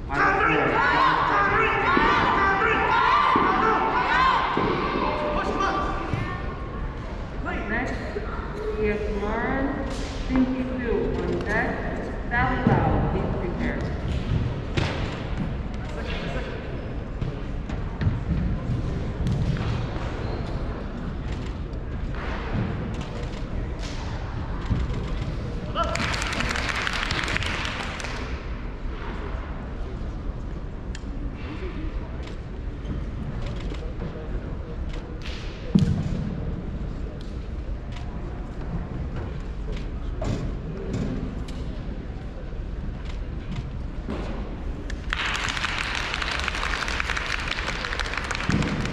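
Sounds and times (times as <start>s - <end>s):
indistinct voices in a hall: 0.0s - 48.9s.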